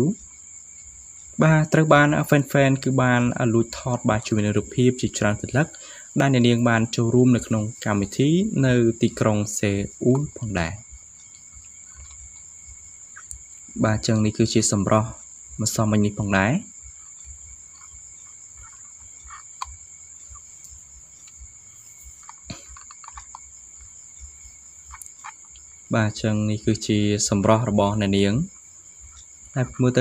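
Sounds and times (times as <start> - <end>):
narration speech: 1.4 - 10.8, 13.8 - 16.7, 25.9 - 28.5, 29.5 - 30.0.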